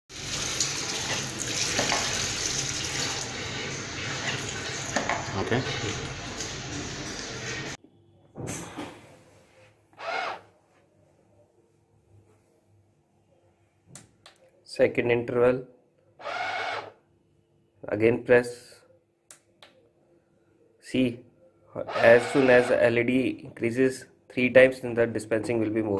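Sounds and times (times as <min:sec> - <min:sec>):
tap water running into sink: 0:00.1 - 0:07.8
soap dispenser pump motor: 0:21.9 - 0:22.8.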